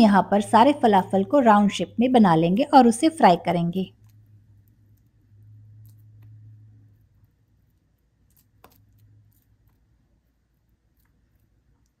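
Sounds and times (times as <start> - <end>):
hands patting wet mixture: 8.2 - 9.9.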